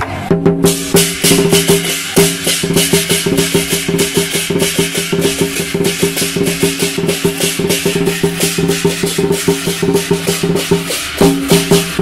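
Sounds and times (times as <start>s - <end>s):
drum beating fast: 0.3s - 12.0s
hand cymbals clashing: 0.6s - 12.0s.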